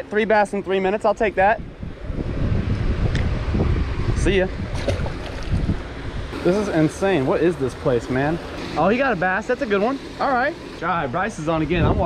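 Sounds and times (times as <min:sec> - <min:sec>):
wind buffeting microphone: 0:00.6 - 0:08.5, 0:11.3 - 0:12.0.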